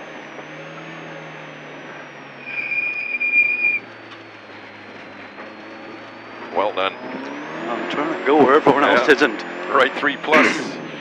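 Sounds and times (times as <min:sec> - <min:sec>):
car engine and road noise: 0:00.0 - 0:11.0
high steady squeal: 0:00.2 - 0:08.1.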